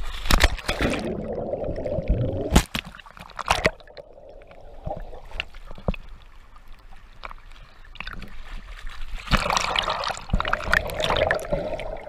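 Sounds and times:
water splashing: 0:00.1 - 0:12.0.

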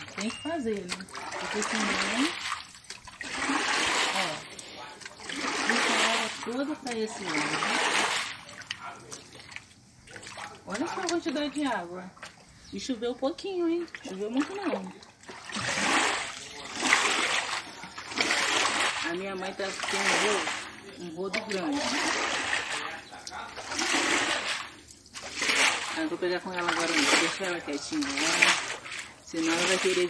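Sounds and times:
water rushing and splashing: 0:00.0 - 0:30.0.

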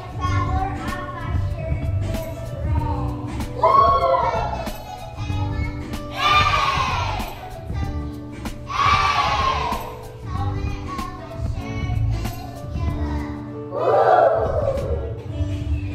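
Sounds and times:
backing track with steady beat: 0:00.0 - 0:13.5
group shouts: 0:03.6 - 0:04.4, 0:06.2 - 0:07.2, 0:08.7 - 0:09.8, 0:13.8 - 0:15.0.

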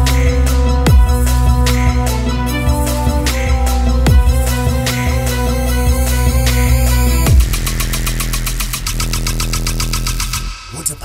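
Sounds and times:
pulsing synth bass: 0:00.0 - 0:10.7.

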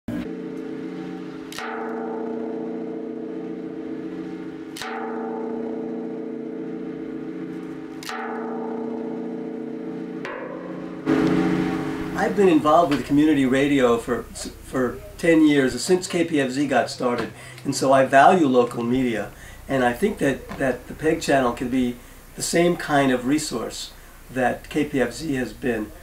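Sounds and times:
gong-like metallic tones ringing: 0:00.1 - 0:15.7.

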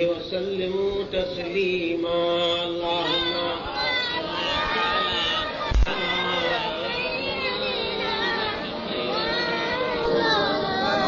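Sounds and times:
person chanting devotional melody: 0:00.0 - 0:04.5, 0:05.5 - 0:11.0.

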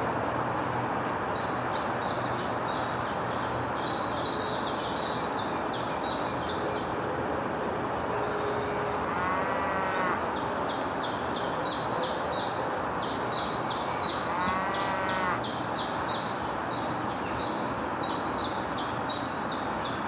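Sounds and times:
cattle mooing: 0:09.0 - 0:10.2, 0:14.0 - 0:15.4.

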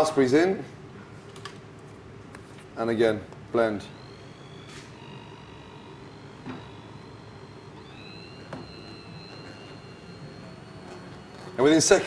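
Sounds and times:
immersion blender whining: 0:03.8 - 0:12.0.

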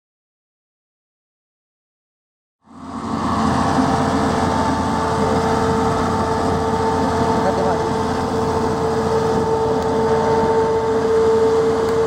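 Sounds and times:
farm machine engine humming: 0:02.6 - 0:12.0.

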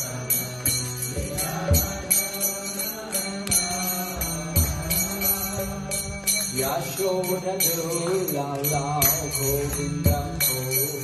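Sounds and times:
hand cymbals struck: 0:00.0 - 0:11.0.

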